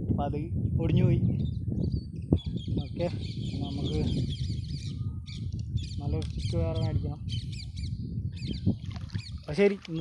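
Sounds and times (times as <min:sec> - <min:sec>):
small birds chirping: 0:01.2 - 0:10.0.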